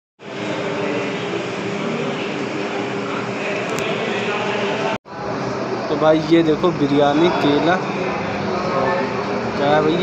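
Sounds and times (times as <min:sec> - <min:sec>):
ceiling fans whirring: 0:00.2 - 0:10.0.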